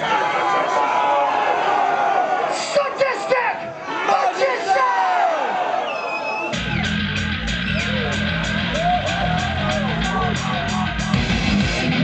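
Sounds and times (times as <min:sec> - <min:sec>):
people shouting: 0:00.0 - 0:11.4
thrash metal band playing: 0:06.6 - 0:12.0.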